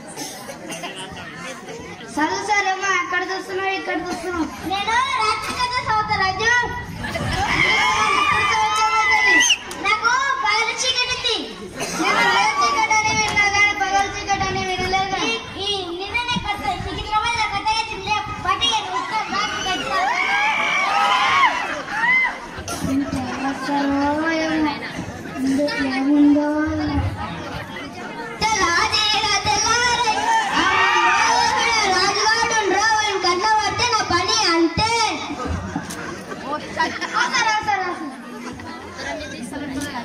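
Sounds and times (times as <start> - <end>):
children talking and calling out: 0.0 - 40.0.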